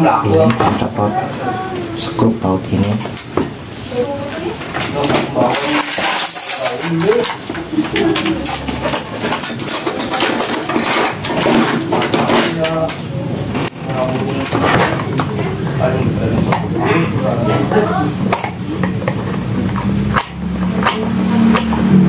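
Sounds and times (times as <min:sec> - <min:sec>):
metal hand tools clinking: 0:05.4 - 0:12.6.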